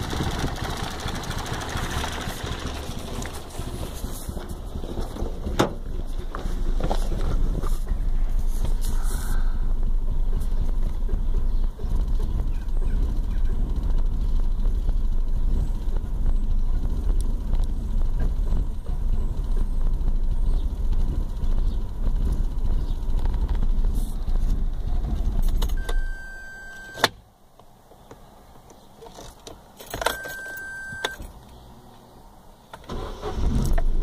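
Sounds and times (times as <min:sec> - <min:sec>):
car engine idling: 0:00.0 - 0:26.9
short beep: 0:25.8 - 0:27.1, 0:30.1 - 0:31.2.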